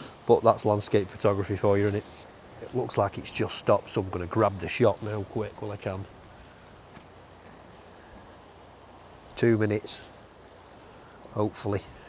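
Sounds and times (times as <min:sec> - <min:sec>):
choppy sea water: 0:00.0 - 0:12.0
light wind: 0:00.0 - 0:12.0.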